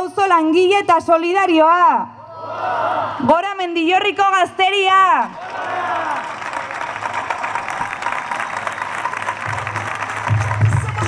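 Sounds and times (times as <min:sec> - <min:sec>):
crowd clapping and applauding: 0:05.3 - 0:11.0
music: 0:09.4 - 0:11.0.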